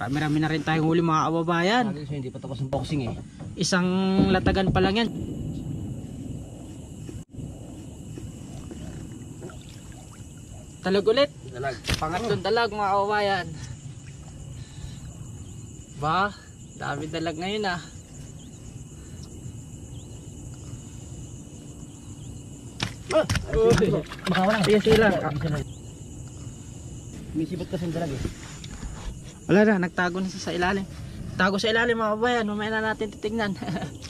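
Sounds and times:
night insects shrilling: 0:00.0 - 0:34.0
low steady rumbling: 0:03.0 - 0:11.5
water dripping: 0:08.2 - 0:11.0, 0:22.8 - 0:26.4.

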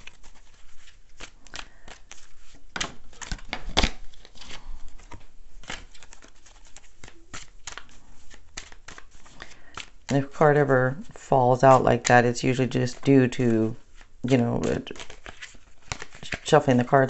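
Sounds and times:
cards being shuffled: 0:00.0 - 0:17.0.

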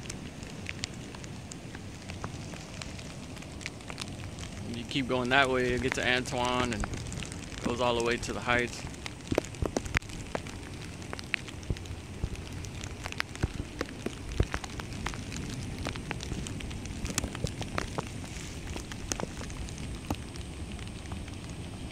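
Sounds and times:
rain falling: 0:00.0 - 0:21.9
raindrops tapping close by: 0:00.0 - 0:21.9.

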